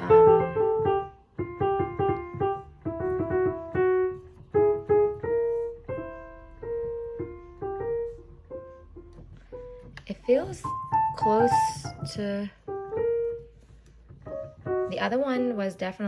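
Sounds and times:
piano melody of single notes: 0.0s - 16.0s.

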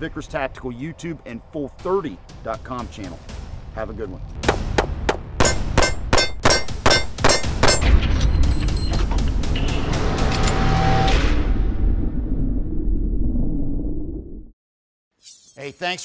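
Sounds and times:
music with deep rumble: 0.2s - 12.8s.

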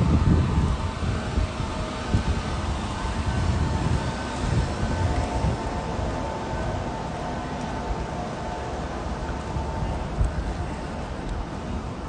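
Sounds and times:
faint steady hum: 0.0s - 12.0s
wind buffeting microphone: 0.0s - 12.0s.

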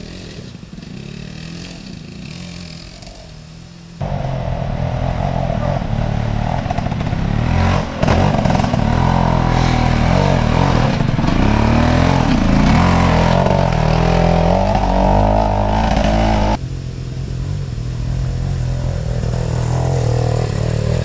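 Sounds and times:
motorcycle engine revving: 0.0s - 21.0s.

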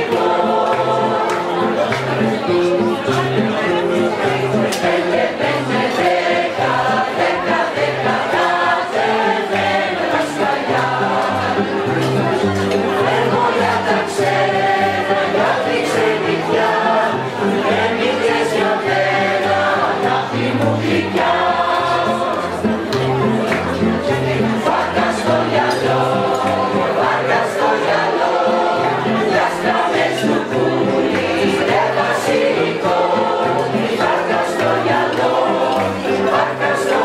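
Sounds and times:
acoustic guitar: 0.0s - 37.0s
mixed choir singing: 0.0s - 37.0s.

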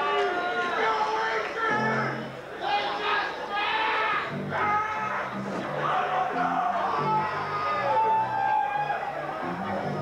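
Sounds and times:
keyboard and guitar tones: 1.7s - 2.5s, 4.0s - 10.0s
bass line: 9.4s - 10.0s.

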